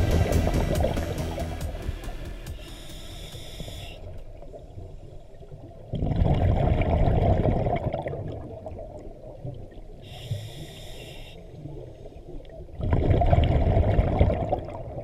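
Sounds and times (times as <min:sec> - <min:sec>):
regulator hissing inhale: 0:01.2 - 0:04.8, 0:10.0 - 0:11.6
bubbling exhale underwater: 0:05.9 - 0:08.7, 0:12.8 - 0:15.0.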